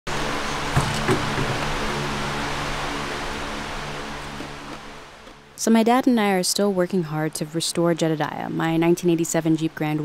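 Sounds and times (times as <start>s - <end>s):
floor fan running: 0.1s - 10.0s.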